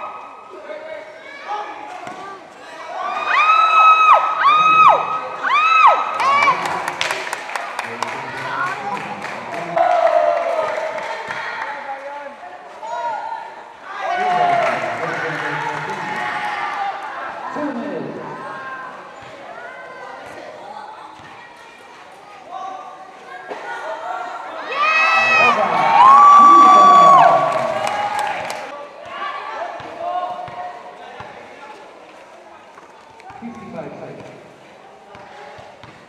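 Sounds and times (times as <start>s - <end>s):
crowd and players shouting: 0.0s - 7.3s, 7.9s - 32.0s.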